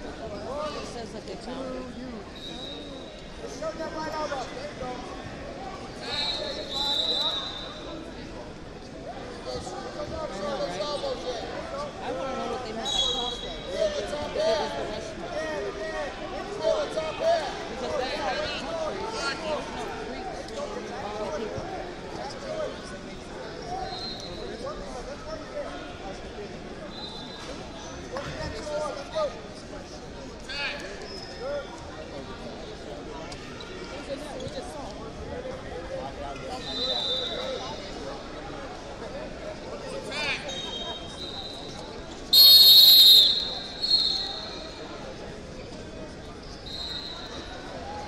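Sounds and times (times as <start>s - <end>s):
overlapping voices and calls: 42.4s - 45.0s.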